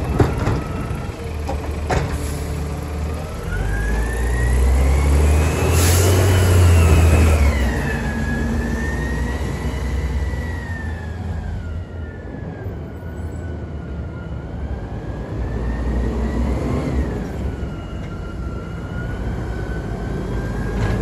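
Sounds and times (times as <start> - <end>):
garbage truck engine rumble: 0.0 - 11.7.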